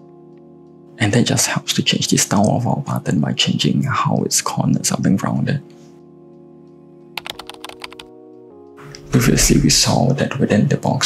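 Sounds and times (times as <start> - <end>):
soft background music: 0.0 - 11.0
keyboard typing clicks: 7.2 - 8.1.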